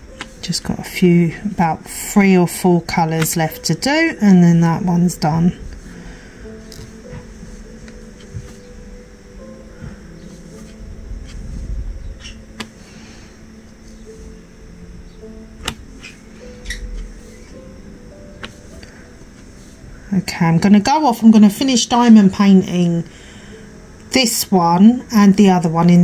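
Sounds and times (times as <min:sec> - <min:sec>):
soft background music: 0:00.0 - 0:26.0.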